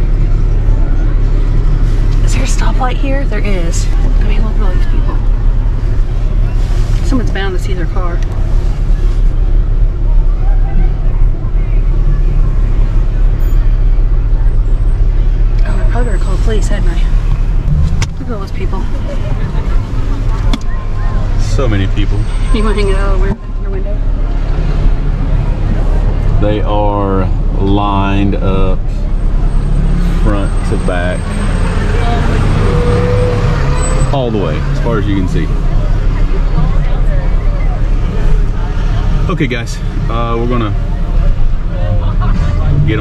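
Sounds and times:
truck engine and road rumble: 0:00.0 - 0:43.0
faint voices: 0:06.3 - 0:17.2, 0:30.1 - 0:43.0.

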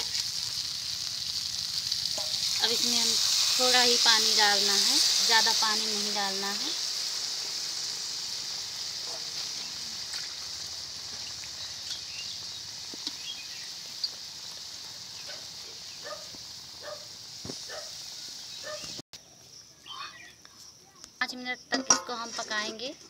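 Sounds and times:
curry sizzling: 0:00.0 - 0:19.0.

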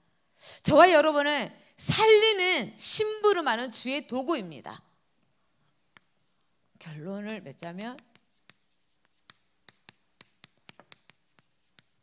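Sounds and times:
chalk tapping on chalkboard: 0:05.9 - 0:06.4, 0:07.7 - 0:12.0.

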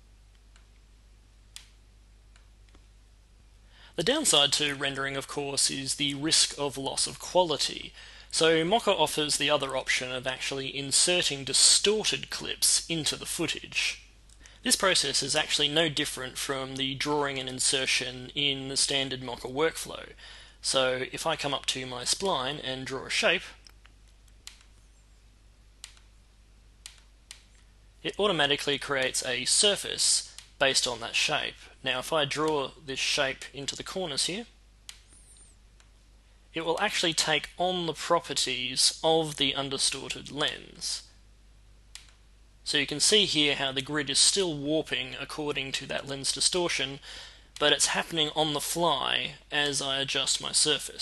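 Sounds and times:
steady low hum: 0:00.0 - 0:51.0
computer mouse clicks: 0:23.6 - 0:24.8, 0:25.8 - 0:26.1, 0:26.8 - 0:27.7, 0:41.9 - 0:42.2.

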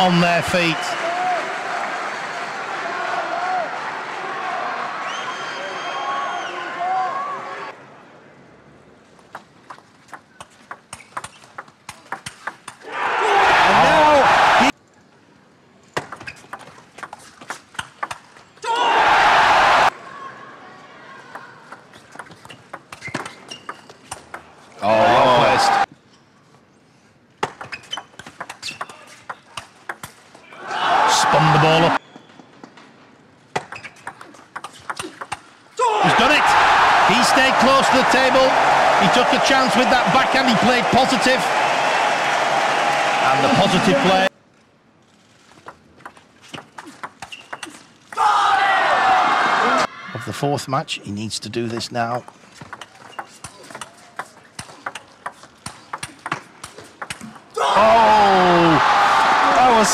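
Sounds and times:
crowd cheering and shouting: 0:00.0 - 0:07.7, 0:12.9 - 0:14.7, 0:18.7 - 0:20.0, 0:24.8 - 0:25.9, 0:30.6 - 0:32.0, 0:35.8 - 0:44.3, 0:48.2 - 0:50.3, 0:57.6 - 0:59.9.

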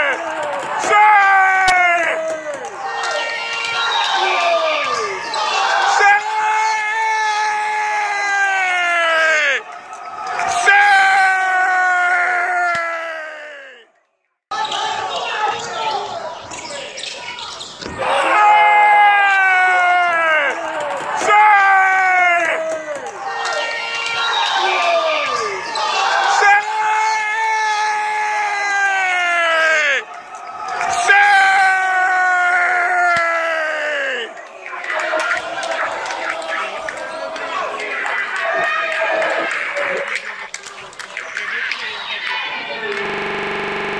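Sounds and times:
crowd voices and shouting: 0:00.0 - 0:43.9.

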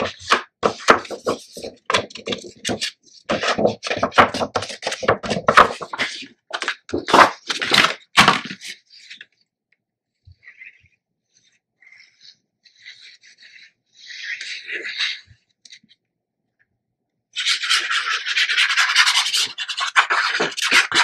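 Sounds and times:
glue bottle tip scraping paper: 0:17.4 - 0:21.0.

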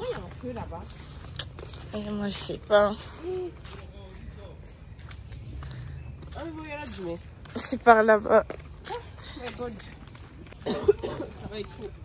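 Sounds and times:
footsteps on sandy dirt: 0:00.0 - 0:12.0.

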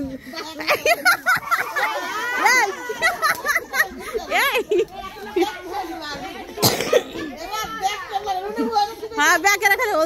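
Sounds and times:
women and girls chattering: 0:00.0 - 0:10.0.

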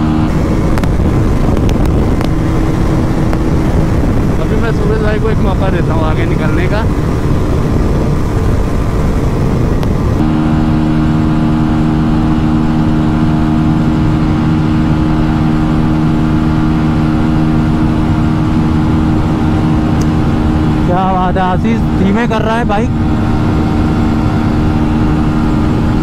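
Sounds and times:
motorcycle engine running flat out: 0:00.0 - 0:26.0
wind rushing over microphone: 0:00.0 - 0:26.0.

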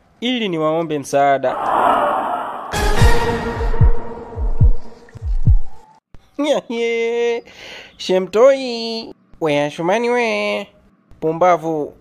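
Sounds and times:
steady low drone: 0:01.6 - 0:05.8
heartbeat thuds: 0:03.0 - 0:05.9.

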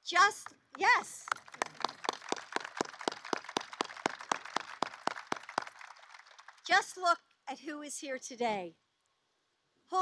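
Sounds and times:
audience applause: 0:01.3 - 0:06.6.

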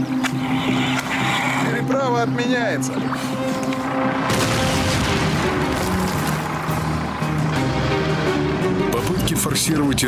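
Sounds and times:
tank engines droning: 0:00.0 - 0:10.0.

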